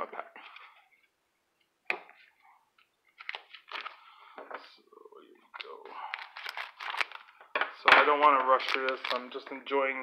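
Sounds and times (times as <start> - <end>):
plastic wrapper crinkling: 3.2 - 4.0, 5.5 - 9.7.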